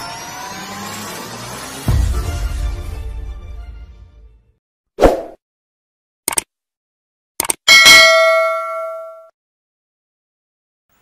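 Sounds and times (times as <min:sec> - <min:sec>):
synthetic rising sweep: 0:00.0 - 0:02.2.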